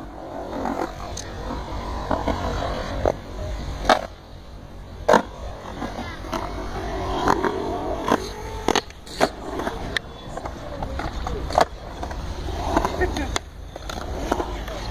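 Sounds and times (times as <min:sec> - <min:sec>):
skateboard clacking on ramp: 0:00.0 - 0:04.2, 0:05.0 - 0:14.9
skateboard wheels rolling on concrete: 0:00.0 - 0:14.9.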